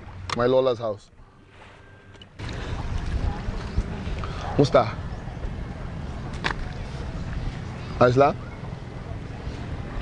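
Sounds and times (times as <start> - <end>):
wind buffeting microphone: 2.4 - 10.0.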